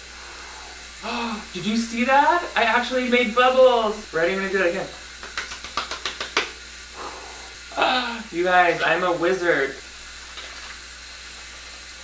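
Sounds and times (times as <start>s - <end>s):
shower running: 0.0s - 12.0s
person speaking: 1.0s - 5.0s, 7.7s - 9.8s
soapy hands squishing: 5.1s - 6.7s.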